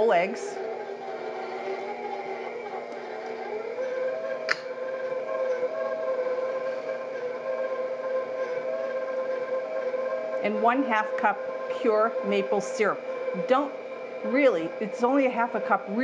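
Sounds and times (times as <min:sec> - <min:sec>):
electric stand mixer whining: 0:00.0 - 0:16.0.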